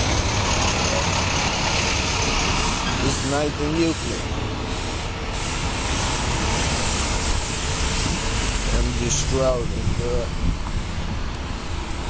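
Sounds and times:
city street noise: 0.0s - 12.0s.

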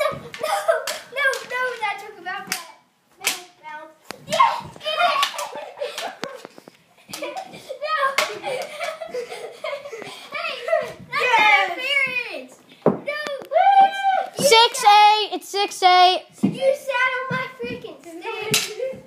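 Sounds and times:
plastic hockey sticks knocking: 0.0s - 3.5s, 4.1s - 10.1s, 12.8s - 13.5s, 16.4s - 19.0s
children calling out: 4.2s - 6.5s, 13.1s - 15.2s.

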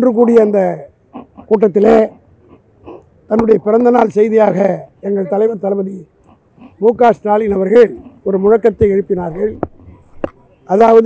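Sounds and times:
man speaking: 0.0s - 2.2s, 3.3s - 6.1s, 6.8s - 11.0s.

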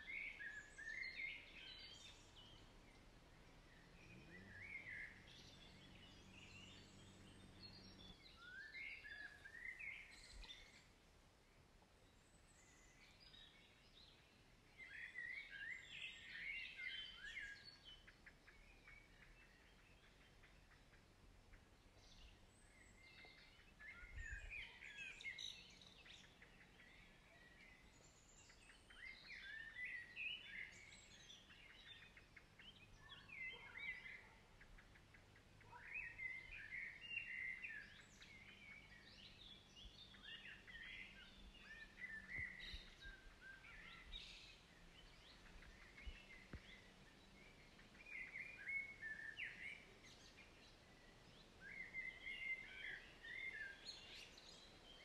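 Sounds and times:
faint background hiss: 0.0s - 55.0s
songbirds chirping: 0.0s - 55.0s.

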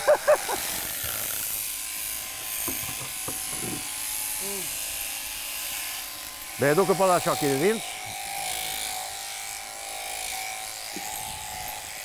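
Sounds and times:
shearing handpiece buzzing: 0.0s - 12.0s.

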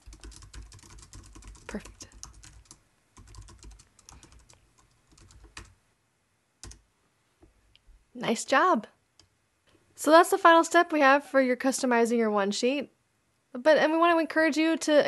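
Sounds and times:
typing on a keyboard: 0.0s - 5.8s, 6.6s - 6.8s.

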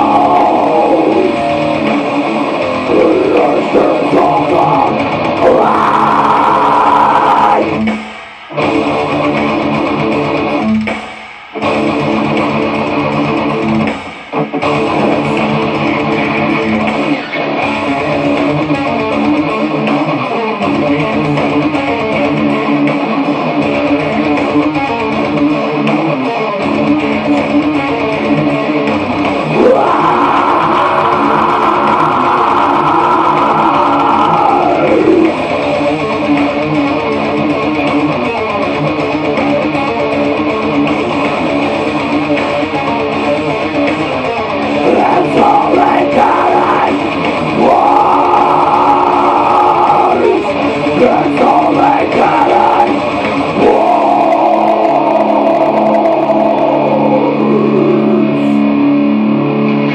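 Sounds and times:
metal scream into microphone: 0.0s - 7.9s, 29.5s - 35.5s, 44.8s - 58.9s
electric guitar: 0.0s - 59.9s.

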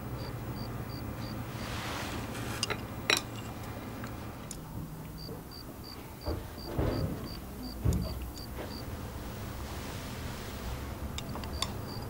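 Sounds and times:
chopsticks and dishes clinking: 2.6s - 4.2s.

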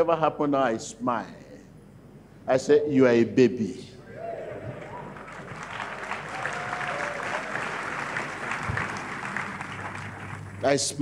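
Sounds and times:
crowd applauding: 4.5s - 10.8s.

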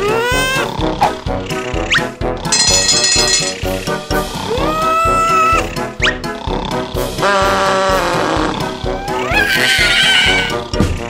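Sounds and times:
cartoon background music: 0.0s - 11.0s
cartoon kitten yelling: 4.5s - 5.7s, 8.9s - 10.6s.

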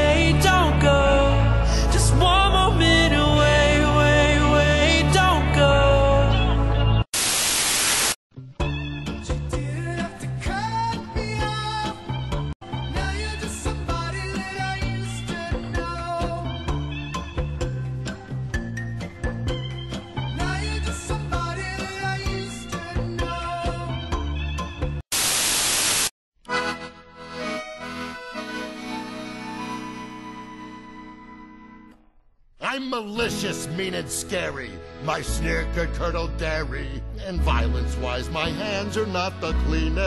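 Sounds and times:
loud static hiss: 7.1s - 8.2s, 25.1s - 26.1s
music with held notes: 26.5s - 31.9s.

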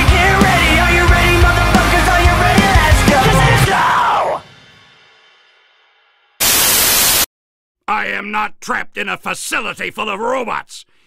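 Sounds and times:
music: 0.0s - 6.4s
television static hiss: 6.4s - 7.2s.

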